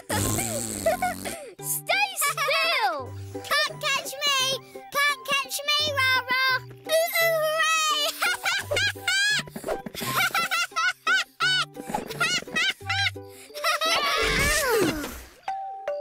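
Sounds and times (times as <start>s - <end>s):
bouncy cartoon music: 0.0s - 16.0s
cartoon character giggling: 8.1s - 9.4s, 10.0s - 15.2s.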